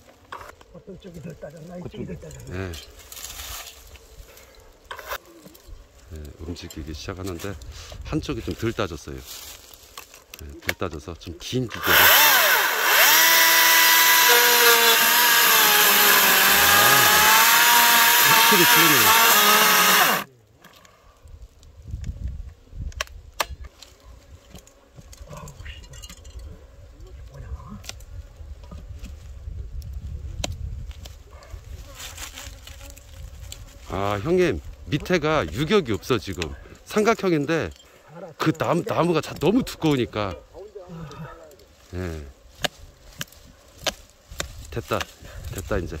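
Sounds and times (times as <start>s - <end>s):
hand tool scraping bark: 0.0s - 21.1s, 30.4s - 46.0s
electric chainsaw cutting wood: 11.7s - 20.3s.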